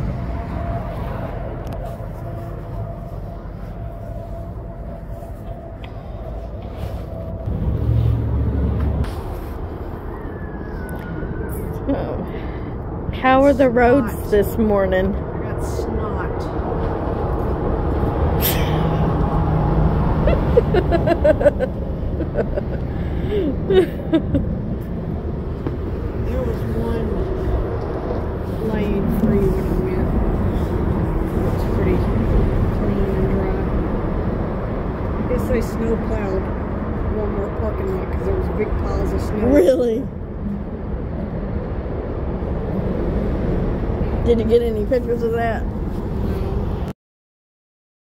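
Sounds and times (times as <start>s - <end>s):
steady low rumble: 0.0s - 46.9s.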